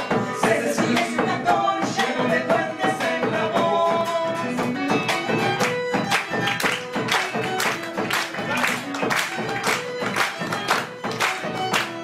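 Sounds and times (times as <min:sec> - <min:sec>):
strummed acoustic guitars: 0:00.0 - 0:12.0
violin playing: 0:02.6 - 0:12.0.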